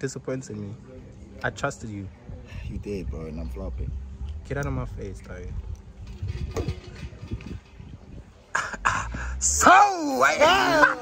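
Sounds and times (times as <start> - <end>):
low background rumble: 2.1 - 9.8.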